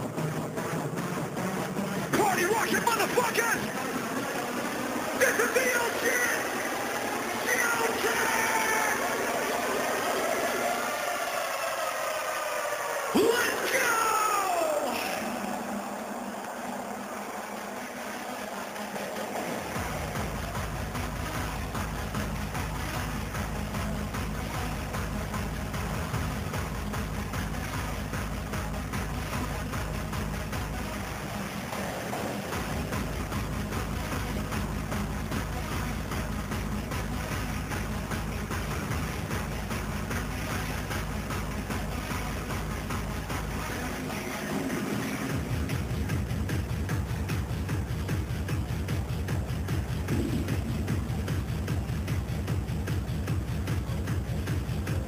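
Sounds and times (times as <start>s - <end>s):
electronic dance music: 0.0s - 55.0s
bass-heavy beat: 13.2s - 55.0s.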